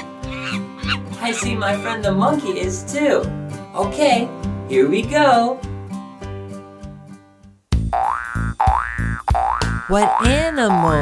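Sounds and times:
cartoon spring boing: 7.9s - 11.0s.

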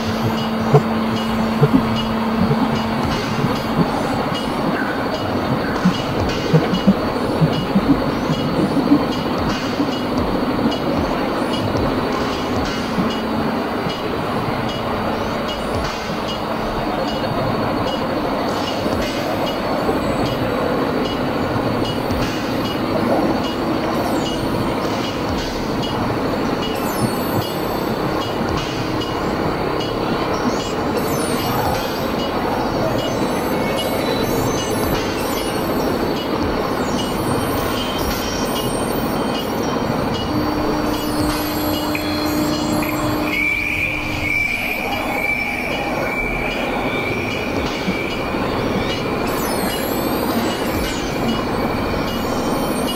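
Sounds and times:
high thin held tone: 0.0s - 52.9s
industrial noise drone music: 0.0s - 52.9s
low held tone: 0.0s - 52.9s.

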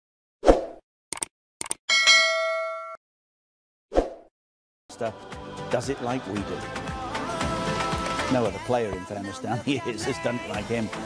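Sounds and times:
quick clicks: 1.1s - 1.8s
bright metallic ding: 1.9s - 3.0s.

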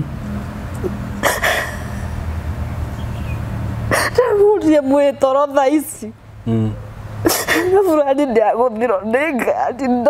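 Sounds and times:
woman sobbing: 0.8s - 2.2s, 3.9s - 4.6s, 7.3s - 7.9s.

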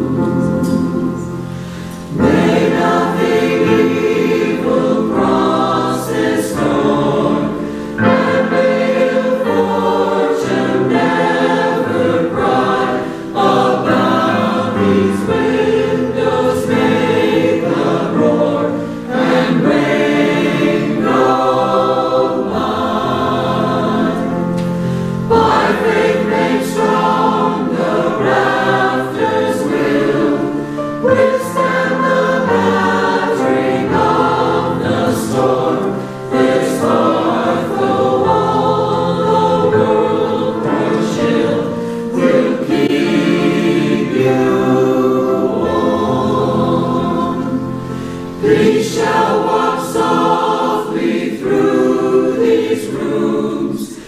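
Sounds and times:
mixed choir singing: 0.0s - 54.0s
choir breathing in: 1.2s - 5.3s, 7.3s - 10.3s, 11.1s - 18.0s, 18.6s - 37.1s, 41.6s - 42.4s, 47.6s - 49.2s.

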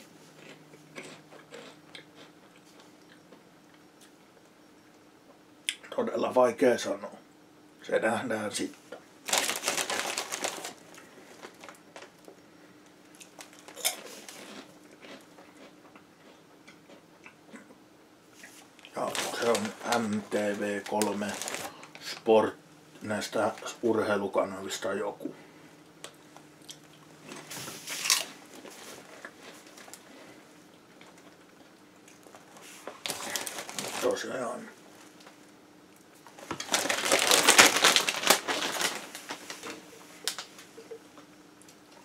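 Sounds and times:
crisps crunching while chewed: 0.3s - 3.3s, 8.9s - 12.4s, 13.1s - 17.8s, 18.4s - 22.3s, 26.1s - 34.4s, 36.0s - 40.7s.

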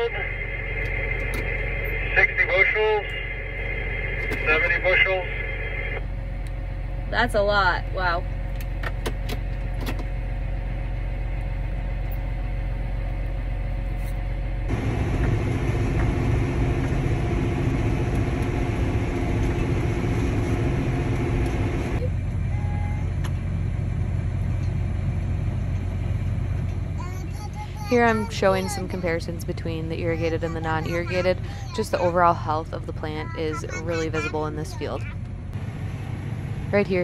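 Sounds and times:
tractor engine droning: 0.0s - 37.0s.

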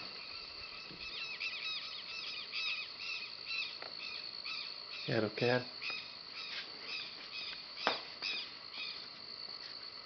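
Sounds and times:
lapwing high calls: 0.0s - 5.2s, 5.8s - 9.1s
crickets trilling: 0.0s - 10.0s.

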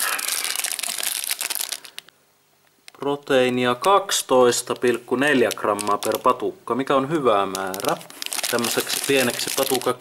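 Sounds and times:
plastic wrapper crinkling: 0.0s - 2.1s, 2.9s - 10.0s.

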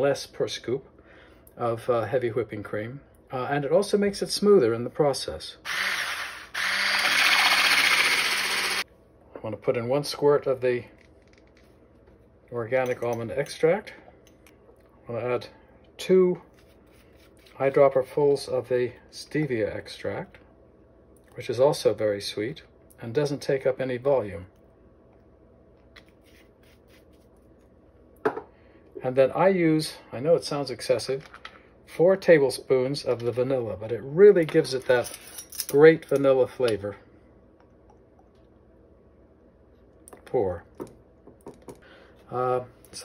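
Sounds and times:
electric whisk whirring in cream: 5.7s - 8.8s.

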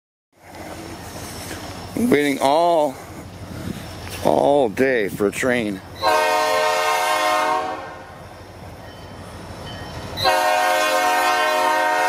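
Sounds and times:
distant freight train rumble: 0.4s - 12.0s.

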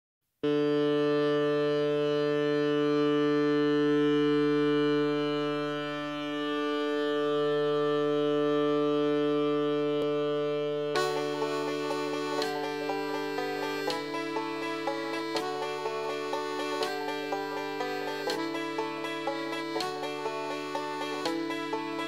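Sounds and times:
loud droning tone: 0.4s - 22.0s.

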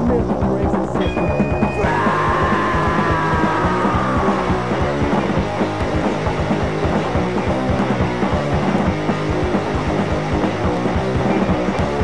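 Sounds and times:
bass guitar: 0.0s - 12.0s
distorted electric guitar: 0.0s - 12.0s
fast drumming: 0.0s - 12.0s.

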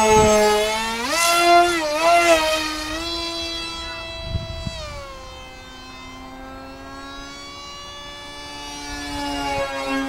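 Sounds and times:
model jet motor whining: 0.0s - 10.0s.

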